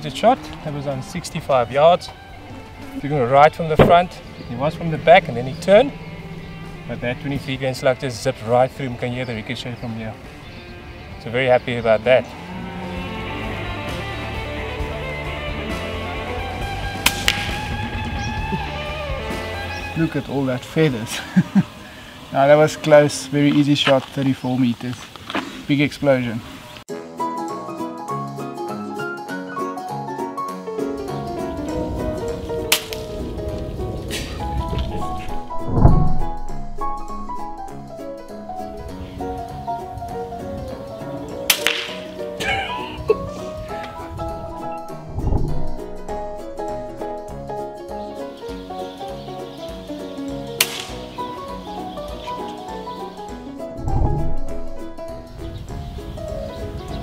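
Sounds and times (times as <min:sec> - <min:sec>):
background music with steady tones: 0:00.0 - 0:24.1, 0:26.5 - 0:57.0
loud low thump: 0:03.7 - 0:08.3, 0:16.6 - 0:19.6, 0:31.7 - 0:39.0, 0:43.8 - 0:47.4, 0:53.7 - 0:55.6
faint snap: 0:17.1 - 0:17.7, 0:32.7 - 0:33.1, 0:41.5 - 0:42.1, 0:50.6 - 0:51.0
air rifle shot: 0:17.1 - 0:18.0, 0:32.7 - 0:33.1, 0:41.5 - 0:42.1, 0:50.6 - 0:51.1.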